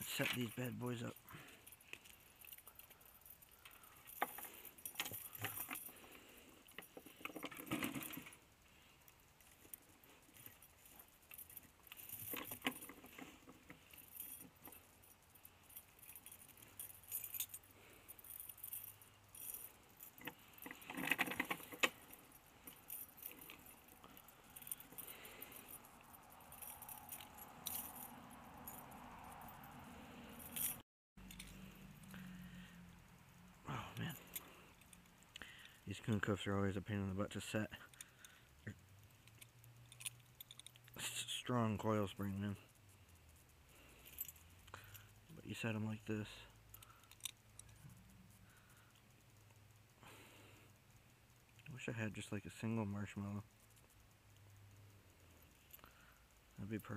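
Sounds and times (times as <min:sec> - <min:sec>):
steel chain jangling: 0:00.0 - 0:56.9.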